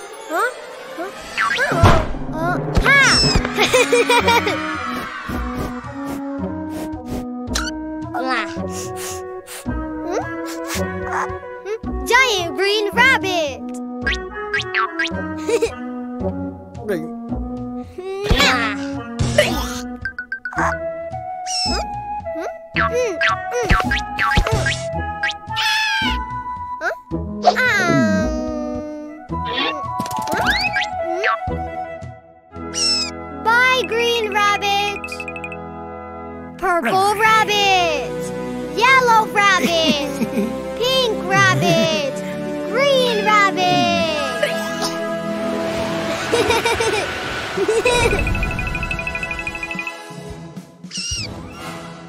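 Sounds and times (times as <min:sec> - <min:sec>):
cartoon background music: 0:00.0 - 0:52.0
squeaky meow-like vocal cries: 0:21.5 - 0:21.8, 0:25.6 - 0:26.1, 0:32.7 - 0:33.2, 0:50.9 - 0:51.3
high-pitched wavering squeak: 0:32.7 - 0:33.2.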